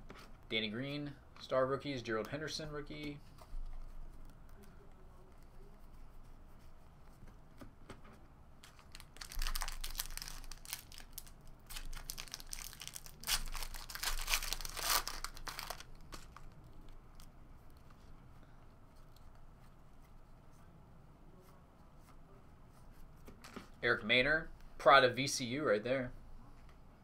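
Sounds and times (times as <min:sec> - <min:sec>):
foil wrapper tearing and crinkling: 0:08.6 - 0:16.6.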